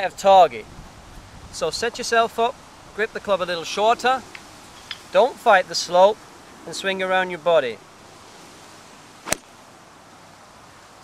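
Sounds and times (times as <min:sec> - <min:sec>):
faint outdoor air hiss: 0:00.0 - 0:11.0
golf iron striking ball: 0:09.2 - 0:09.6.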